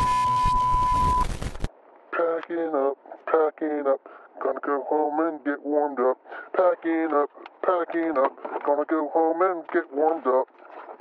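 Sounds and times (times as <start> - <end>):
person talking over radio: 2.2 - 10.5.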